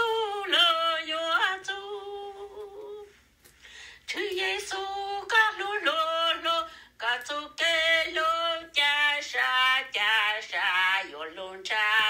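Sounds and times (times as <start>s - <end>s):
woman singing unaccompanied: 0.0s - 3.2s, 4.1s - 12.0s.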